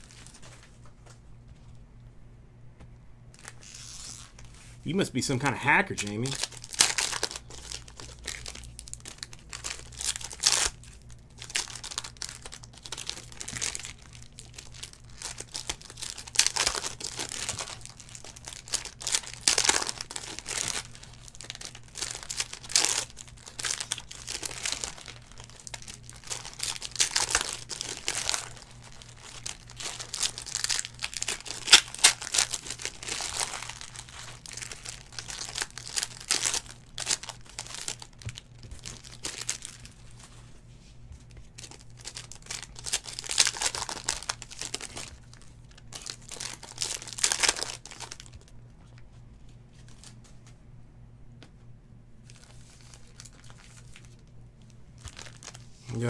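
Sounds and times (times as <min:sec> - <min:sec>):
faint low hum: 0:00.0 - 0:56.0
foil wrappers crinkling and tearing: 0:03.4 - 0:40.5, 0:41.3 - 0:48.6, 0:49.8 - 0:50.2, 0:52.2 - 0:56.0.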